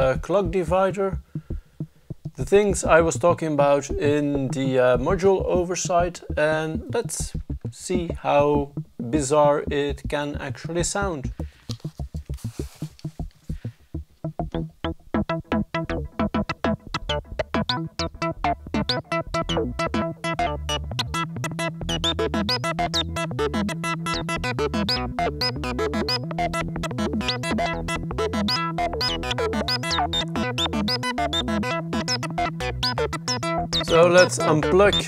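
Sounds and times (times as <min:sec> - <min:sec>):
steady low bass: 0:00.0 - 0:35.0
synthesizer plucked notes sequence: 0:00.0 - 0:35.0.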